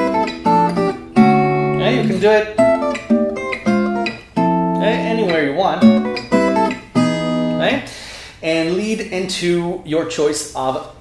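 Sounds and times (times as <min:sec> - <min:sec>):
acoustic guitar chords plucked: 0:00.0 - 0:07.8.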